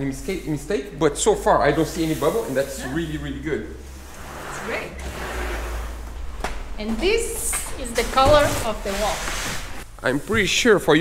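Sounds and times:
cloth rubbing on plastic sheet: 1.8 - 3.1, 3.8 - 6.1, 7.8 - 10.7.

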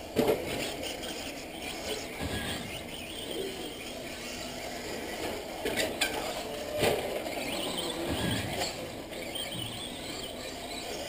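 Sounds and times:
toy car motor whine: 0.0 - 11.0.

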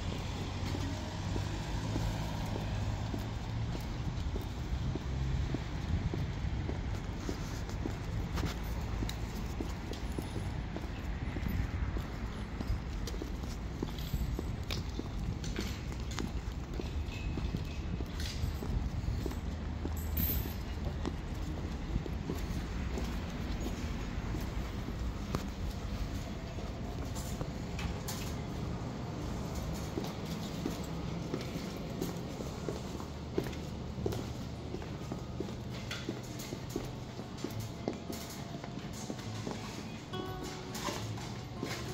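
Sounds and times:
high heels clicking on pavement: 0.1 - 41.9.

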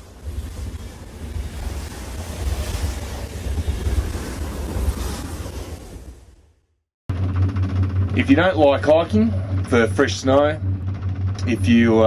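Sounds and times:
rushing noise with deep rumble: 0.0 - 6.5, 7.1 - 12.0
steady low hum: 7.1 - 12.0.

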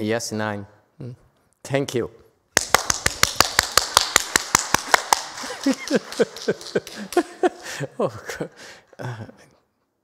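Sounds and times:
person clapping hands: 2.6 - 7.7.

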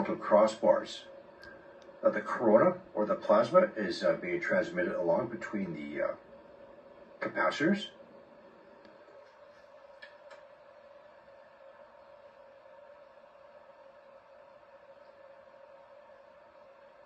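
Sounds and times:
faint steady whine: 0.0 - 17.0.

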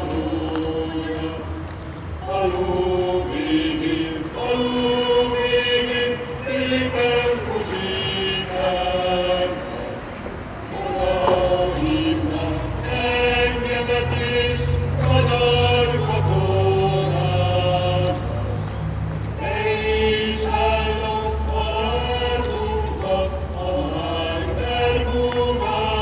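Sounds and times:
choir singing: 0.0 - 1.6, 2.2 - 18.6, 19.3 - 26.0.

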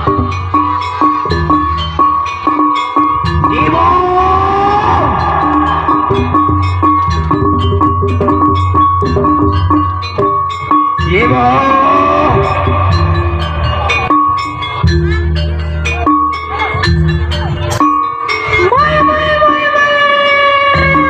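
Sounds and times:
drums: 0.0 - 21.0
held high tone: 0.0 - 21.0
struck gong-like notes: 0.0 - 21.0.

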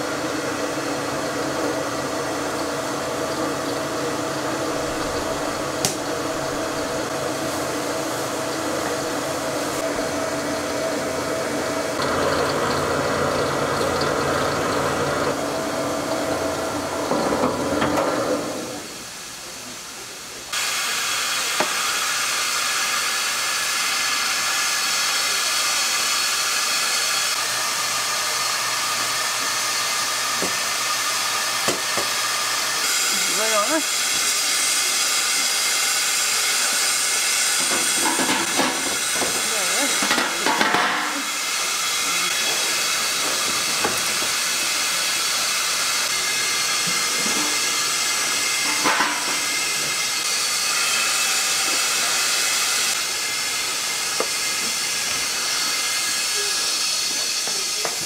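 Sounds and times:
electric mill grinding rice: 0.0 - 19.1, 20.5 - 58.0
steam hissing: 0.0 - 58.0.

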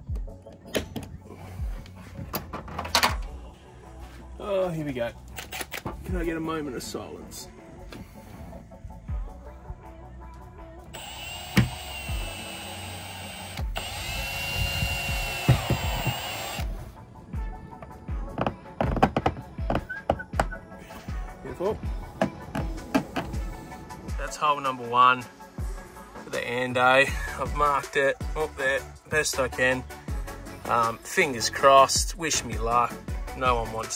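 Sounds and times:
background music with beat: 0.0 - 33.9
cordless drill boring plastic: 11.0 - 16.7.

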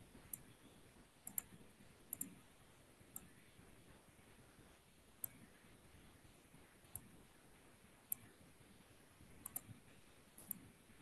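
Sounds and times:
computer mouse clicks: 1.2 - 2.4, 3.1 - 3.4, 5.2 - 5.5, 6.9 - 7.1, 8.1 - 8.3, 9.4 - 9.8, 10.4 - 10.7.

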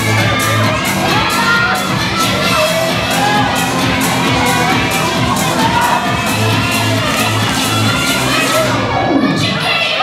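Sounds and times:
bass pulses: 0.0 - 9.6
audience cheering and shouting: 0.0 - 10.0
dance track over loudspeakers: 0.0 - 10.0.

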